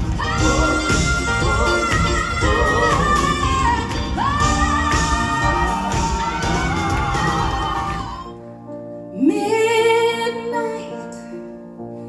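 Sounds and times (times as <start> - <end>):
live band playing: 0.0 - 8.4
woman singing: 0.0 - 8.4, 9.2 - 11.2.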